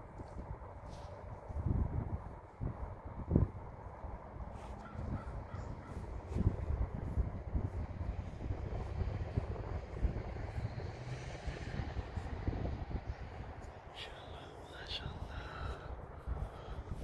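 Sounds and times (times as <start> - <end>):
wind rumbling on microphone: 0.0 - 17.0
crow cawing faintly: 4.6 - 6.1.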